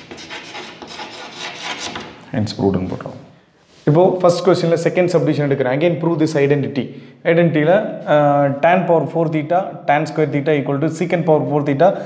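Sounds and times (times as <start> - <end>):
chalk scratching on blackboard: 0.0 - 2.2.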